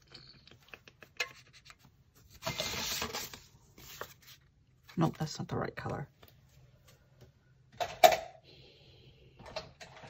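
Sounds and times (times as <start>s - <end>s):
paper scraping: 2.3s - 4.5s.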